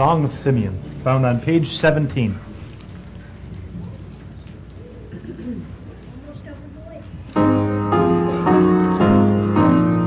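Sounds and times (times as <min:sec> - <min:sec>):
rustling clothing and chairs: 0:00.0 - 0:10.0
faint low voices: 0:03.0 - 0:08.9.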